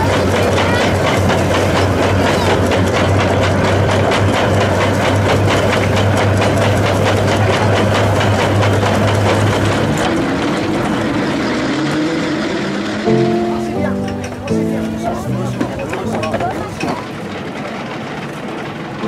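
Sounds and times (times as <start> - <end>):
threshing machine rattling hum: 0.0 - 19.0.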